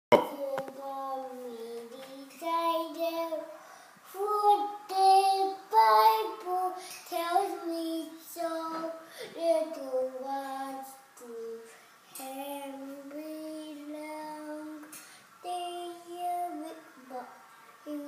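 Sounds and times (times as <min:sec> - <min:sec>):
toddler singing: 0:00.1 - 0:03.5, 0:04.1 - 0:18.0.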